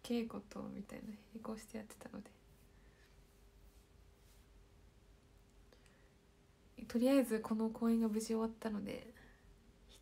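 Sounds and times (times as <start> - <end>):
woman speaking: 0.0 - 2.4, 6.8 - 9.2
faint steady hum: 0.0 - 10.0.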